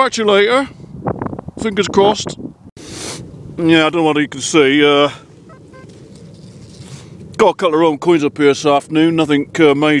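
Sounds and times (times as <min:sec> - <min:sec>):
faint short high tones: 0:05.5 - 0:05.9.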